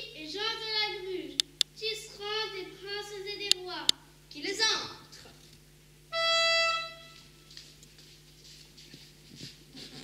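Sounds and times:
toy trumpet note: 6.1s - 7.3s.

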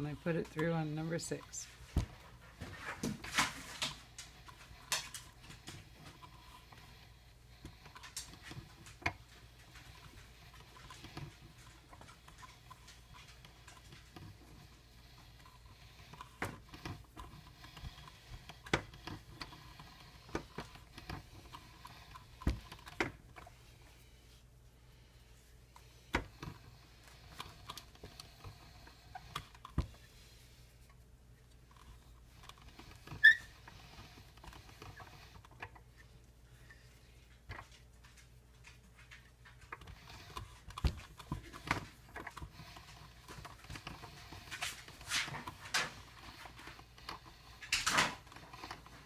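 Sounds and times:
dough rustling: 0.0s - 49.0s
pasta roller clicks and knocks: 3.1s - 23.6s, 38.8s - 49.0s.

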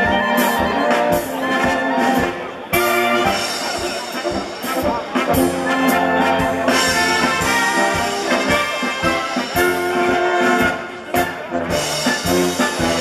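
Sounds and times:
brass band playing a polka: 0.0s - 13.0s.

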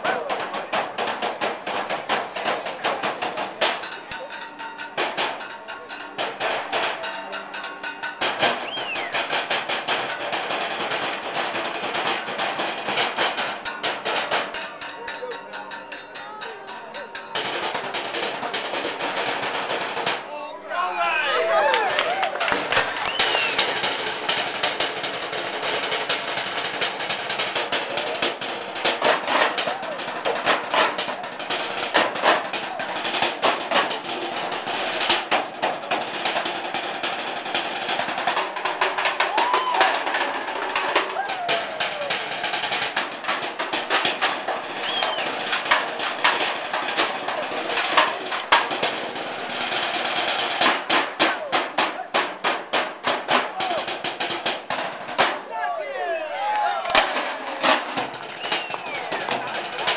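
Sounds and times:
drumsticks beating metal trash cans: 0.0s - 55.7s, 56.4s - 59.9s.

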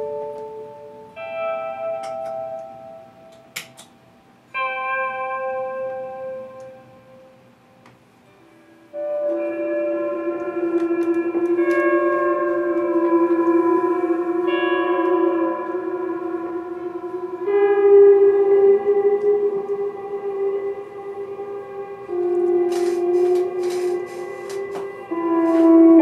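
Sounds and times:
electric guitars improvising: 0.0s - 26.0s.

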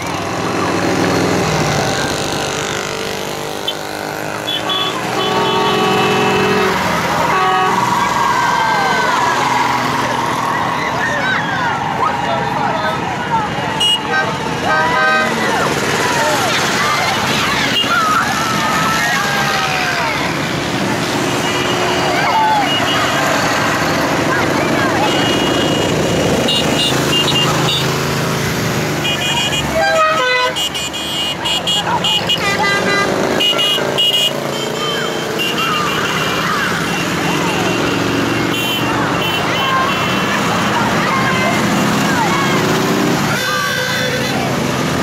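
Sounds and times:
motorcycles passing slowly: 0.0s - 45.0s
short high horn toots: 3.6s - 7.9s
lower stepped horn call: 3.6s - 8.2s.

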